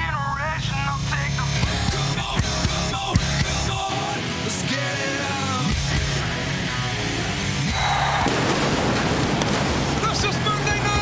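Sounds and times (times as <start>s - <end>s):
pyrotechnic blast: 7.7s - 11.0s
pyrotechnics crackling: 7.7s - 11.0s
sharp bangs: 7.7s - 11.0s.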